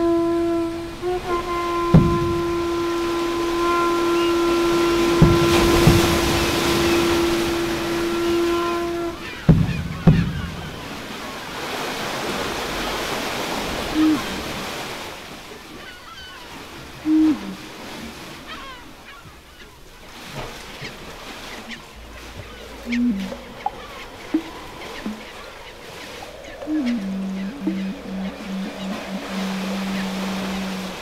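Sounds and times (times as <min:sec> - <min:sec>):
long steady horn-like tone: 0:00.0 - 0:15.0, 0:16.9 - 0:18.4, 0:21.3 - 0:31.0
sea surf: 0:00.0 - 0:31.0
dull knocks: 0:01.7 - 0:11.0, 0:22.9 - 0:25.4.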